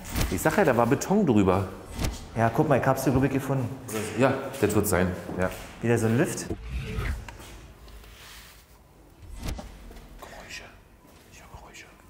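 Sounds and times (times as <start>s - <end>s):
faint whispered voices: 10.2s - 12.0s.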